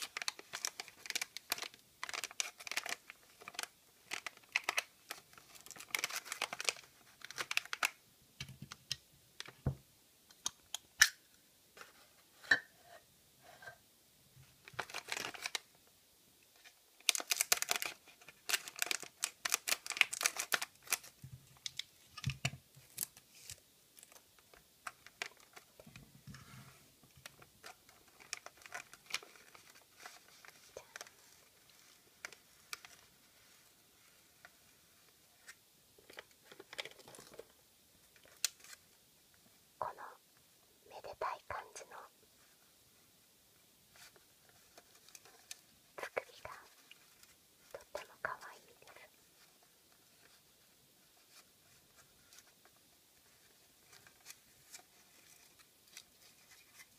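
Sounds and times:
sharp wafer crackles: 0.0 - 8.0, 17.0 - 21.1
person whispering: 30.6 - 31.4, 39.8 - 40.2, 40.8 - 42.2, 45.9 - 47.0, 47.6 - 49.2.

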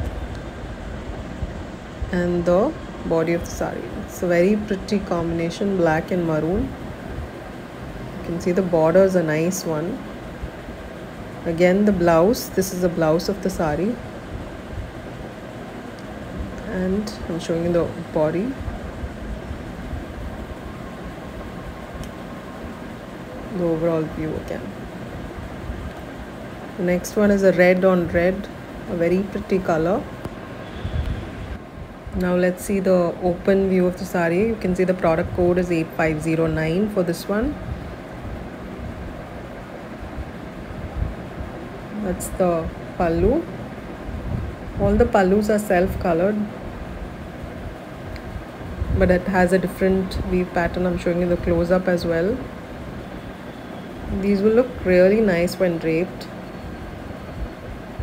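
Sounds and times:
low hum and hiss: 0.0 - 58.0
low room rumble: 0.0 - 58.0.

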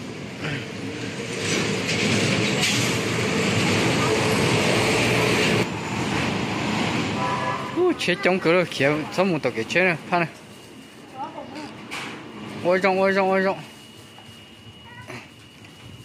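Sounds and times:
vehicle engine and road noise: 0.0 - 12.8.

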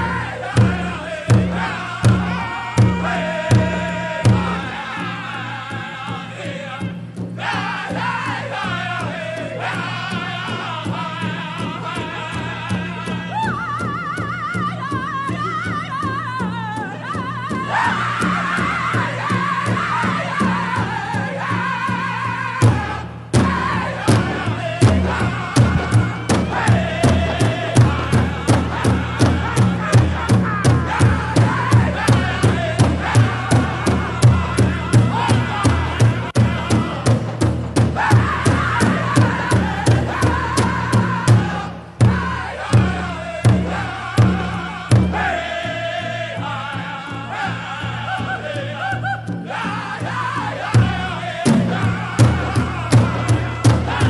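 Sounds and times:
group singing in wavering voices: 0.0 - 54.0
large bass drum beat: 0.0 - 54.0.

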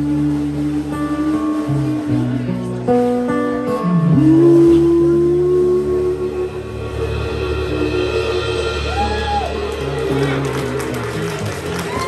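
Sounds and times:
bass guitar: 0.0 - 12.0
slide guitar: 0.0 - 12.0
audience cheering: 8.8 - 12.0
audience clapping: 9.5 - 12.0.

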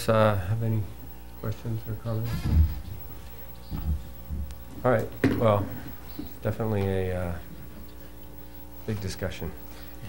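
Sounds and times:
man speaking: 0.0 - 2.8, 4.7 - 7.5, 8.8 - 9.6
electrical mains hum: 0.0 - 10.0
faint low murmurs: 0.0 - 10.0.

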